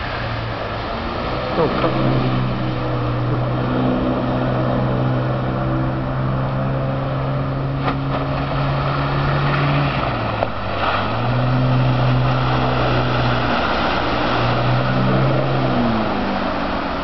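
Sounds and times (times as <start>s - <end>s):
outboard engine running at speed: 0.0s - 17.0s.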